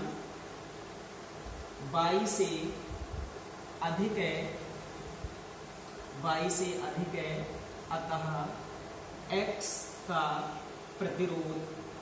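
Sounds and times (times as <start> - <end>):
background hum and hiss: 0.0 - 12.0
man talking: 6.2 - 8.6, 9.3 - 11.8.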